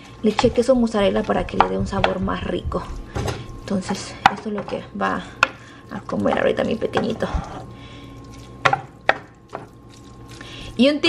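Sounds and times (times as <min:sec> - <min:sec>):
wooden spoon knocking pan: 0:00.3 - 0:07.3, 0:08.6 - 0:09.7.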